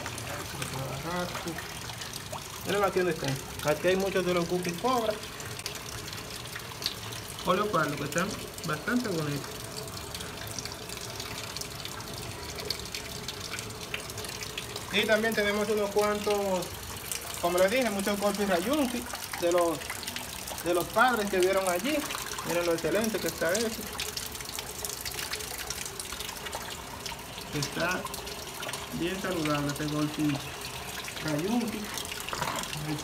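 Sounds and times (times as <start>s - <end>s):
water drips: 0.0s - 33.0s
water trickling and splashing: 0.0s - 33.0s.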